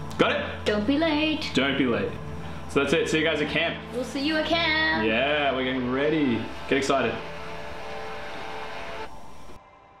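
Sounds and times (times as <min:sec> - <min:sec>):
room hiss and hum: 0:05.0 - 0:10.0.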